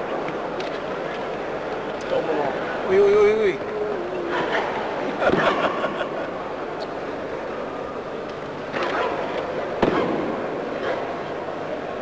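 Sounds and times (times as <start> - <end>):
arena crowd murmur: 0.0 - 12.0
sharp karate movement cracks: 8.7 - 11.3.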